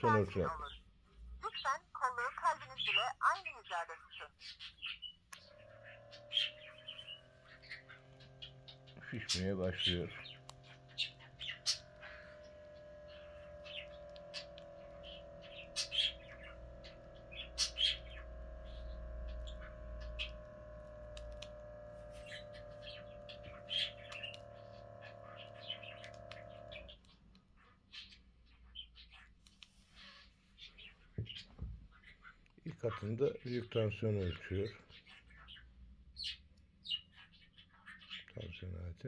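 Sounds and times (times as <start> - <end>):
electric air pump running: 5.2 - 27.1.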